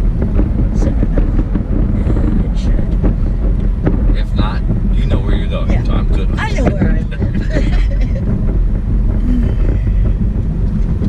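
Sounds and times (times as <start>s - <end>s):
car road and engine rumble: 0.0s - 11.0s.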